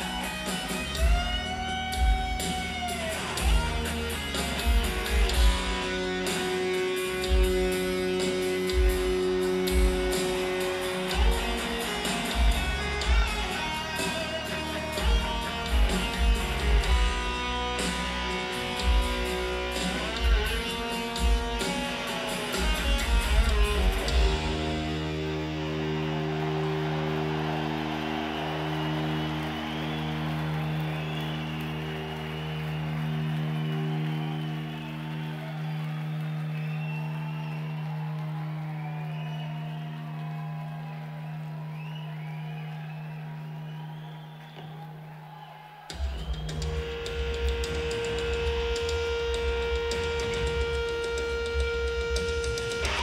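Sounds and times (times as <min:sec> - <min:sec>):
rock band playing: 0:00.0 - 0:44.0, 0:45.9 - 0:53.0
crowd noise: 0:00.0 - 0:53.0.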